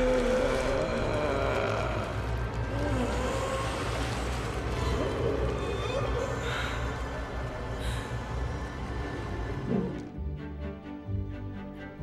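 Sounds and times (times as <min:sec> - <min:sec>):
deep rumble and noise: 0:00.0 - 0:10.6.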